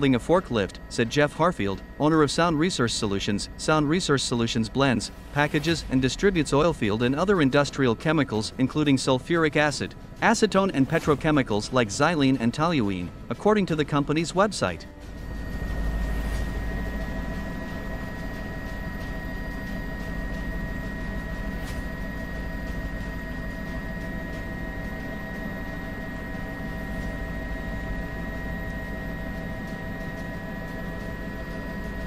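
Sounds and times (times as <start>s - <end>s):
helicopter rumble and whine: 0.0s - 32.0s.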